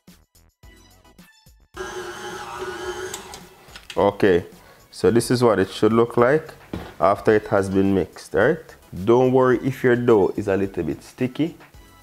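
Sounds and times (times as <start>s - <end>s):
stand mixer motor whine: 1.8s - 3.6s.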